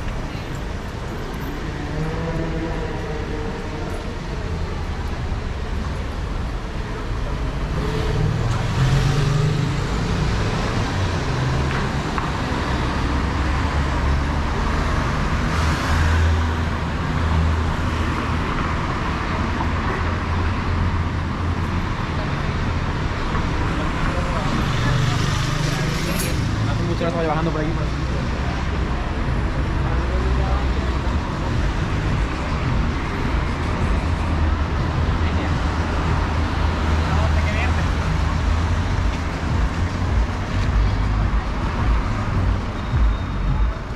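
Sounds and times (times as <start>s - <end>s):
cars passing with low rumble: 0.0s - 43.9s
passersby talking: 16.6s - 43.9s.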